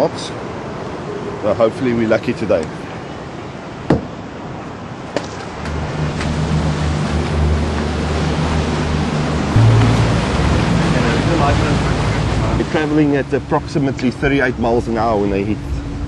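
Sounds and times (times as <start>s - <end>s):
sea noise: 0.0s - 16.0s
wind: 0.0s - 16.0s
low musical drone: 5.7s - 16.0s.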